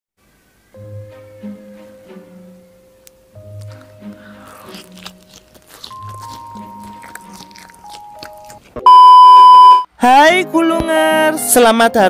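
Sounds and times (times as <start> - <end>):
soft background music: 0.4 - 8.7, 10.0 - 12.0
crunchy chewing: 3.4 - 8.9
electronic beep: 8.8 - 9.9.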